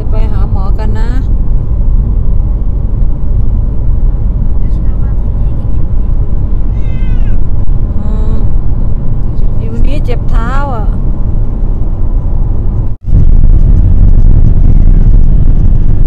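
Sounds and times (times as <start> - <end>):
car cabin road rumble: 0.0 - 16.0
cat meowing: 6.6 - 7.5.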